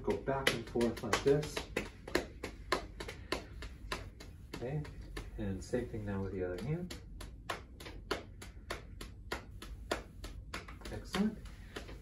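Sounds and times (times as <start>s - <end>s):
hand patting thigh: 0.0s - 12.0s.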